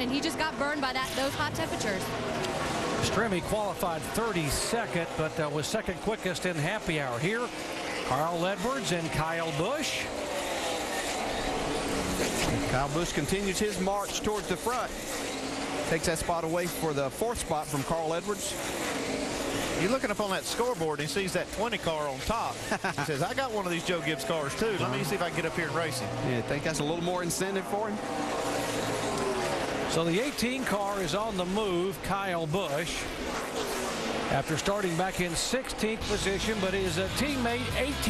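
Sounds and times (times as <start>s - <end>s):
race car engines droning: 0.0s - 38.0s.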